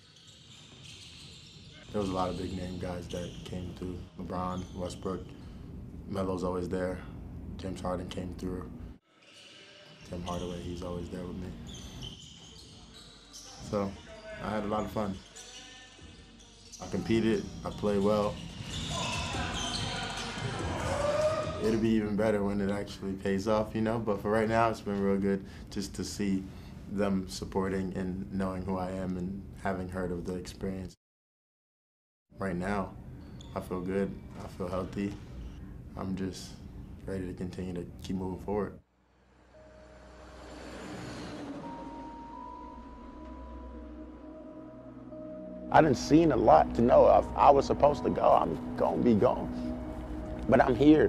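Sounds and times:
sneakers squeaking on floor: 0:00.0 - 0:05.4, 0:09.2 - 0:21.8, 0:33.2 - 0:34.5
ambient music: 0:39.2 - 0:51.0.

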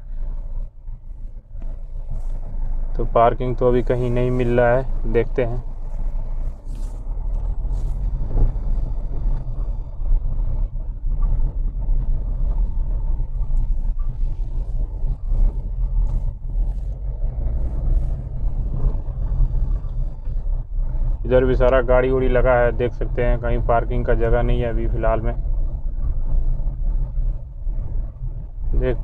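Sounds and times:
car engine and tyres rumbling: 0:00.0 - 0:29.0.

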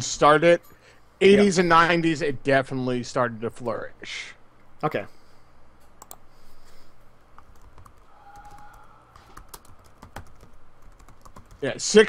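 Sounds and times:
keyboard typing clicks: 0:06.0 - 0:06.2, 0:07.4 - 0:11.6.

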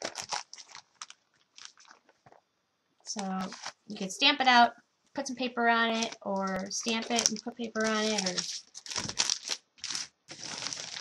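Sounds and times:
plastic bag crinkling: 0:00.0 - 0:02.4, 0:03.1 - 0:04.1, 0:05.8 - 0:11.0.

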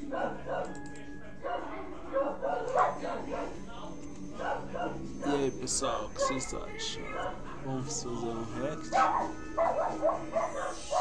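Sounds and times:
dog barking: 0:00.0 - 0:00.8, 0:01.4 - 0:03.6, 0:04.4 - 0:05.0, 0:06.2 - 0:07.6, 0:08.9 - 0:11.0.

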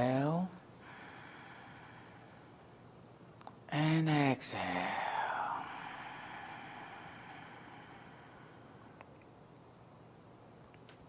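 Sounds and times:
breathy exhale hiss: 0:00.8 - 0:02.7, 0:04.8 - 0:09.0.

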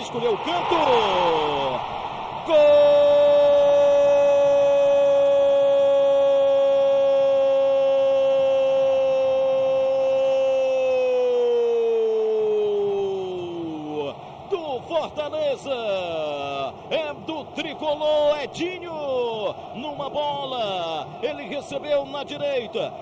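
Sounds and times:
man shouting goal: 0:02.4 - 0:15.2.

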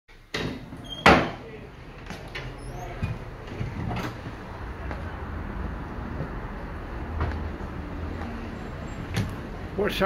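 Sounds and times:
door banging shut: 0:00.3 - 0:01.4.

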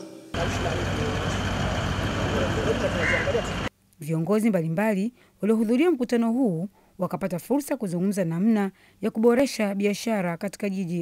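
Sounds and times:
vehicles running: 0:00.4 - 0:03.7.

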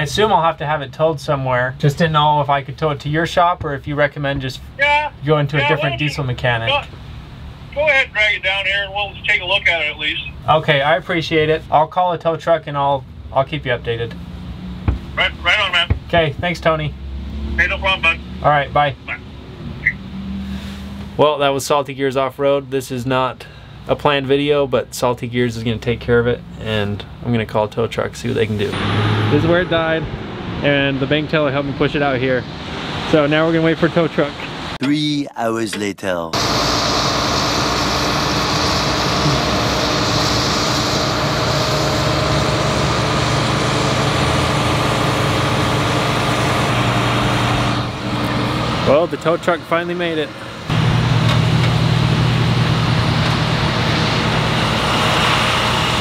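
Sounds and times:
vehicle engine idling: 0:36.4 - 0:56.0.

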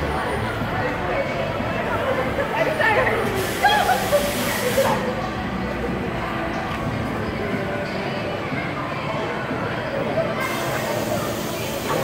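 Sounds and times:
air hissing: 0:03.4 - 0:05.1.

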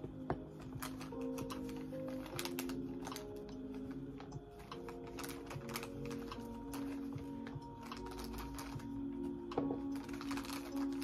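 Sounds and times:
soft background music: 0:00.0 - 0:11.0
plastic bag crinkling: 0:00.6 - 0:11.0.

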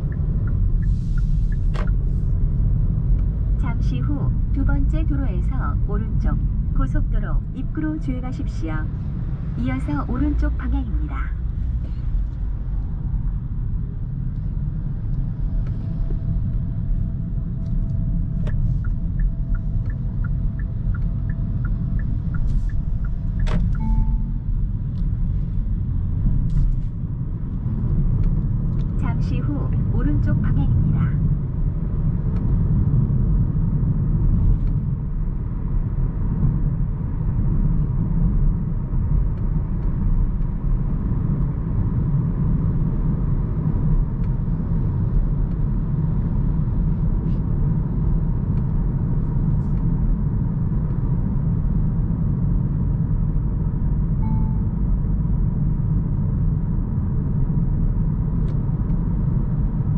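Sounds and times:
road and tyre rumble: 0:00.0 - 0:59.9
short tone: 0:23.8 - 0:24.6, 0:54.2 - 0:54.8.

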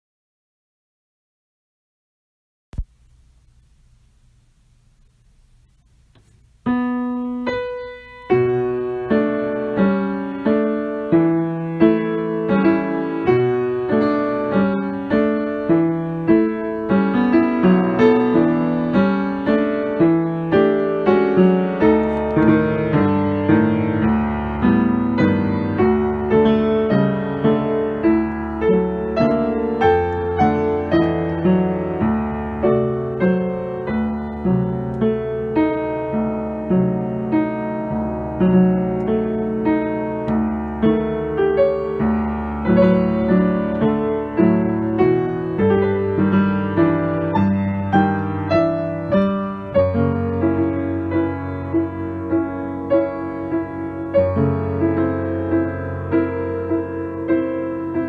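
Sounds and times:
solo piano playing: 0:05.6 - 0:58.0.

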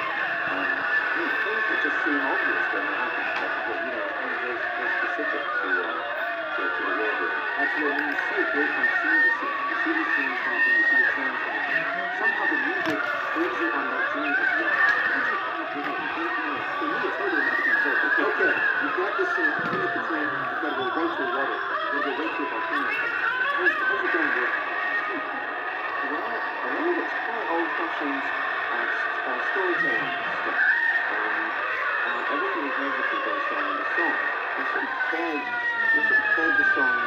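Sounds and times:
crowd chattering and laughing: 0:00.0 - 0:37.0
shrieks and squeals: 0:00.0 - 0:37.0.

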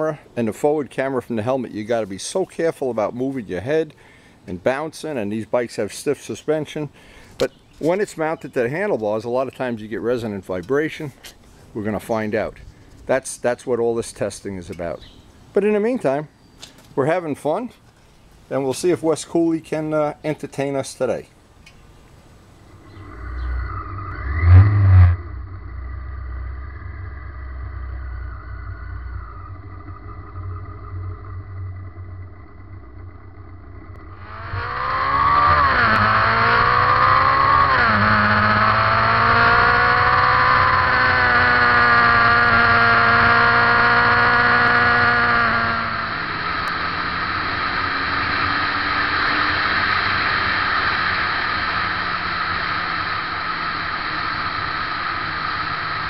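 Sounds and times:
wind rushing: 0:22.6 - 0:36.2
motorcycle engine revving and running: 0:22.7 - 0:56.0.

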